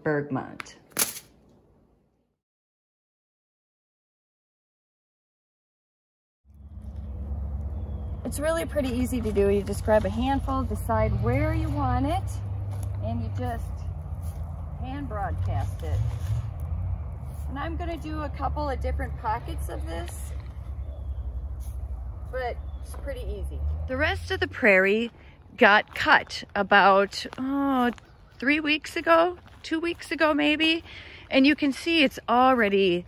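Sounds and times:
soft rustles: 0:12.6 - 0:17.6.

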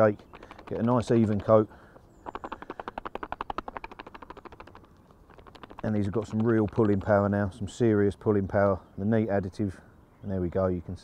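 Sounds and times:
baits rattling in shaken pot: 0:02.3 - 0:07.3.

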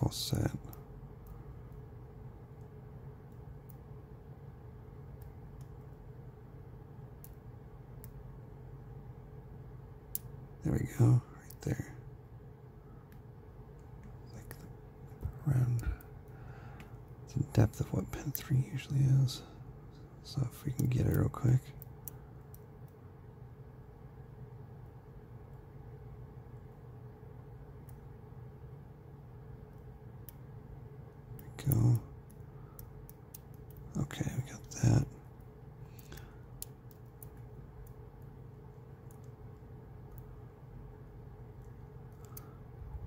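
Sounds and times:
steady low hum: 0:00.0 - 0:43.0
wordless vocal sounds: 0:33.9 - 0:35.2.

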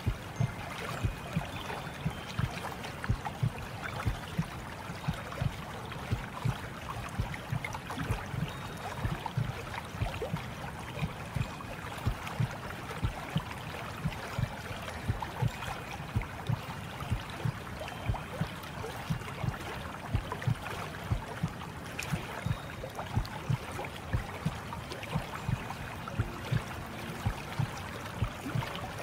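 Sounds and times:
gurgling water: 0:00.0 - 0:29.0
soft low thuds: 0:06.1 - 0:13.3.

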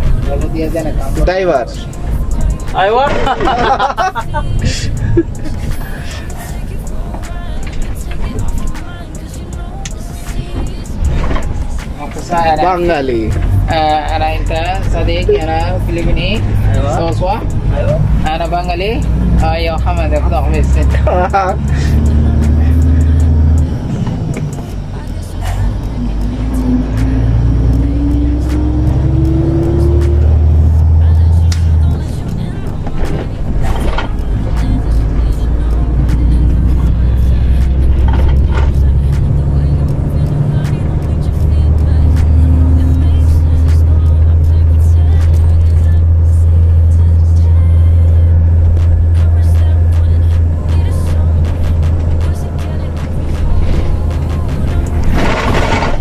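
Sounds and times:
diesel truck engine droning: 0:00.0 - 0:56.0
music playing: 0:00.0 - 0:56.0.

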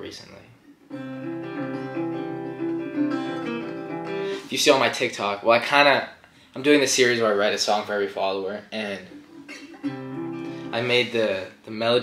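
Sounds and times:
acoustic guitar playing chords: 0:00.6 - 0:04.6, 0:08.8 - 0:11.2.

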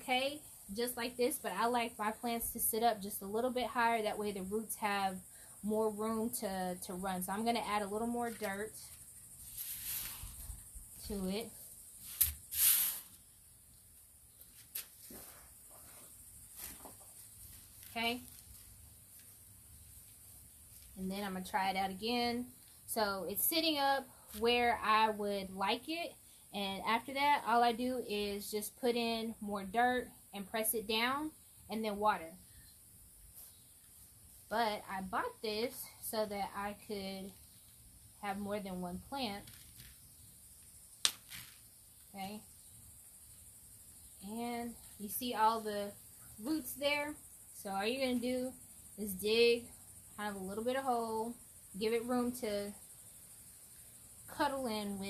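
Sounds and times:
potting soil rustling: 0:07.3 - 0:13.3, 0:14.4 - 0:21.3, 0:41.0 - 0:42.4
root ball snapping: 0:41.0 - 0:41.6.

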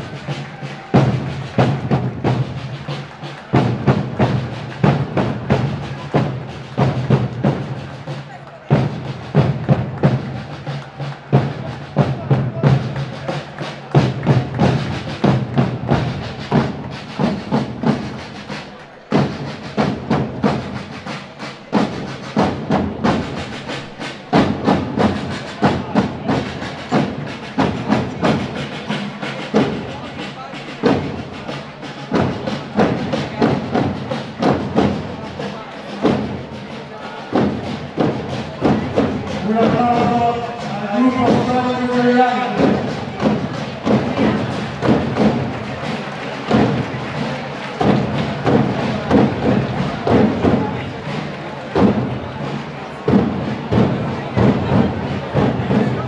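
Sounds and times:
side drums marching rhythm: 0:00.0 - 0:56.0.

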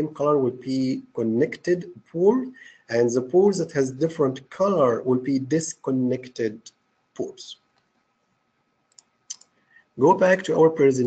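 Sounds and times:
computer mouse clicks: 0:08.9 - 0:09.6.

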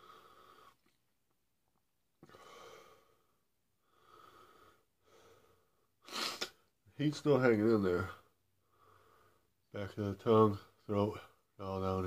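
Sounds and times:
man breathing heavily: 0:00.0 - 0:00.9, 0:02.2 - 0:06.0, 0:08.6 - 0:09.6.

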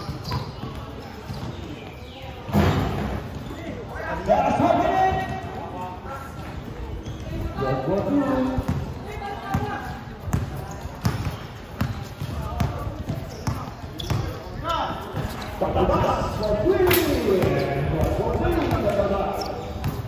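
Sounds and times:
basketball bouncing on hard court: 0:08.0 - 0:14.4, 0:17.4 - 0:20.0.

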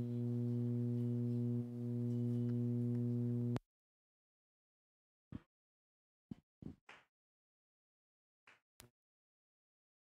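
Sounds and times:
steady low tone: 0:00.0 - 0:03.6.

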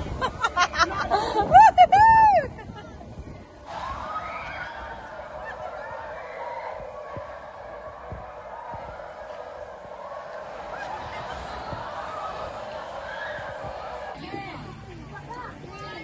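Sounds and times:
steady outdoor hiss: 0:00.0 - 0:16.0
distant riders shrieking: 0:03.7 - 0:14.2.

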